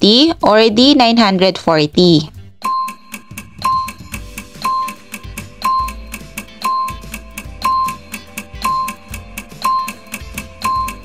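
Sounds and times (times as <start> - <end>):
light backing music: 0.0 - 11.0
steady ticking: 2.5 - 11.0
short high beeps: 2.6 - 11.0.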